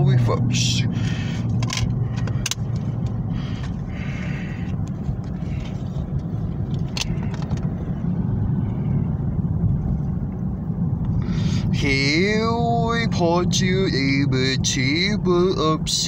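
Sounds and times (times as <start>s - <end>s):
car running low rumble: 0.0s - 16.0s.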